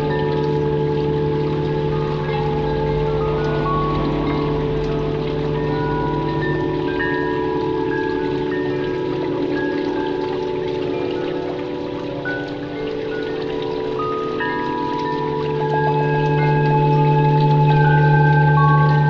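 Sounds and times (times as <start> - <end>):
high chime-like notes: 0.0 - 19.0
low drone tones: 0.0 - 19.0.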